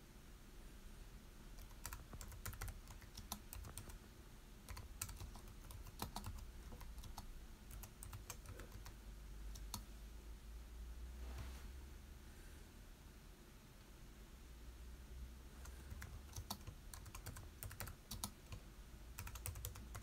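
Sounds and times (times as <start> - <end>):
faint typing on computer keyboard: 1.5 - 4.0, 4.6 - 9.9, 15.5 - 20.0.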